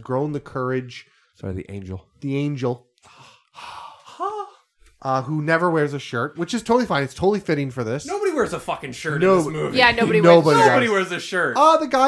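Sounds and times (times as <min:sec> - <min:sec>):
person sighing: 0:03.1 - 0:04.7.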